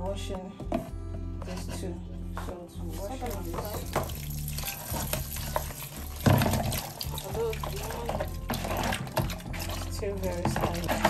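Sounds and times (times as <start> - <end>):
tap water running: 2.8 - 11.0
water splashing into plastic bowl: 2.9 - 11.0.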